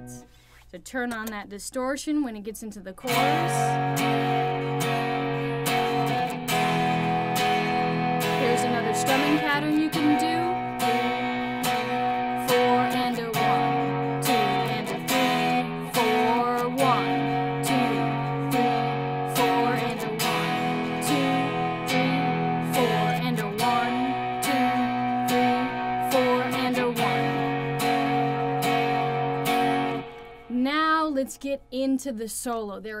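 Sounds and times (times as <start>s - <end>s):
electric guitar strumming: 0.0s - 0.4s, 3.0s - 31.5s.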